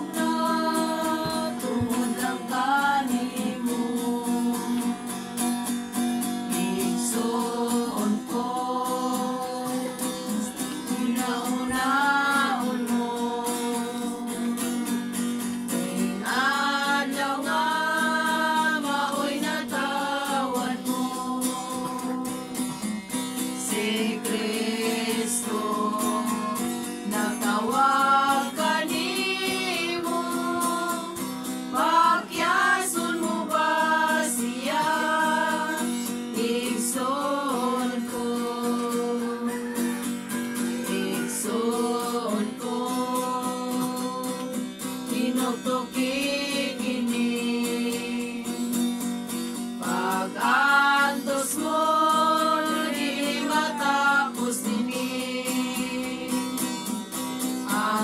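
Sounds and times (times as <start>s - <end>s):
group of voices singing: 0.0s - 5.2s, 6.2s - 48.9s, 49.8s - 58.0s
acoustic guitar: 0.0s - 58.0s.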